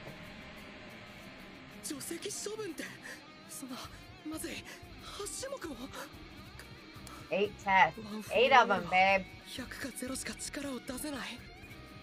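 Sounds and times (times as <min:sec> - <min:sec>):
background music: 0:00.0 - 0:12.0
character voice speaking: 0:07.3 - 0:09.2.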